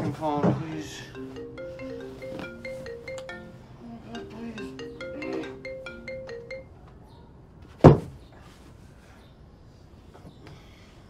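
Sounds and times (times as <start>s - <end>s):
marimba phone ringtone: 0.7s - 6.8s.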